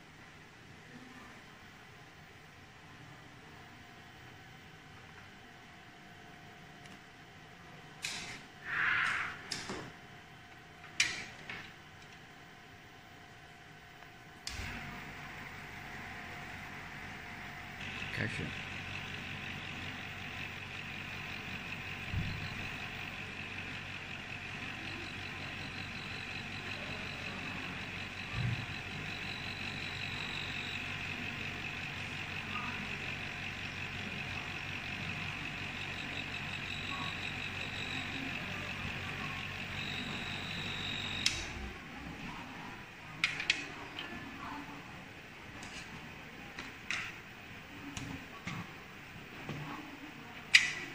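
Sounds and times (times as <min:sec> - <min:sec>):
vortex mixer running: 0:14.4 - 0:49.3.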